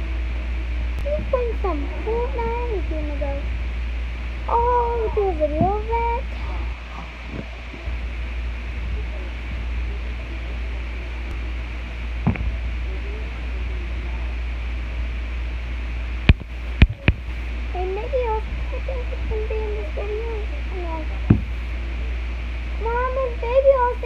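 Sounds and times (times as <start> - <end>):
faint indistinct voice: 0.0 - 3.5, 4.3 - 15.3, 16.4 - 24.0
steady low hum: 0.0 - 24.0
phone being knocked: 21.3 - 21.5.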